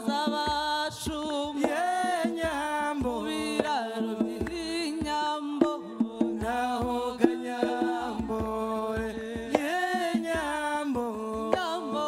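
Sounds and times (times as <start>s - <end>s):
drum hits: 0.0s - 12.0s.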